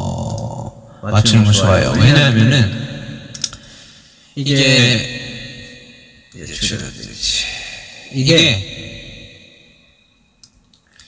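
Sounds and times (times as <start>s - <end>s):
reverberant voice tail: 0.0s - 10.2s.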